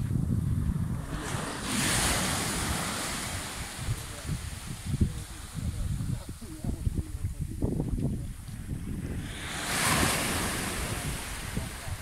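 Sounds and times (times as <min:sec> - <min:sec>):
wind rumbling on microphone: 0:00.0 - 0:12.0
waves washing up shore: 0:00.6 - 0:07.2, 0:08.4 - 0:12.0.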